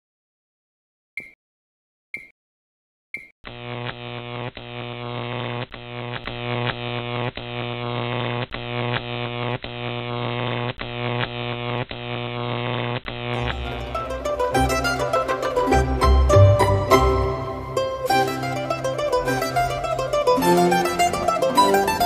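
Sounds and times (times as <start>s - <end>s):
neon sign buzzing hum: 3.5s - 21.9s.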